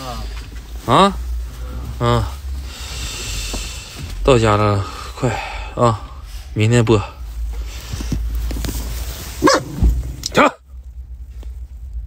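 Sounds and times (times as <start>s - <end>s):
dog barking: 9.4s - 9.8s.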